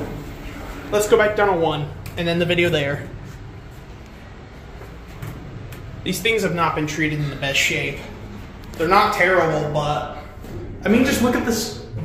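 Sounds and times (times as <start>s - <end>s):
elevator mechanical hum: 0.0s - 12.0s.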